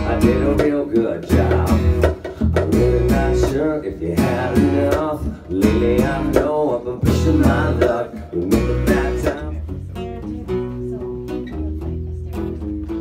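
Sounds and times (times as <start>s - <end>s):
acoustic rock band playing: 0.0s - 13.0s.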